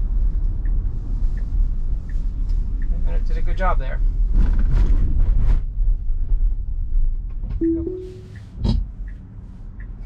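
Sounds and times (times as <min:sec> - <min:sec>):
road and tyre rumble: 0:00.0 - 0:10.0
two-note electronic chime: 0:07.6 - 0:08.4.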